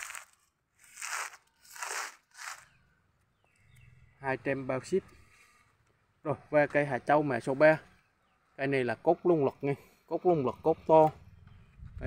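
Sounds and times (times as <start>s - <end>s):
plastic grow bag crinkling: 0.0s - 2.8s.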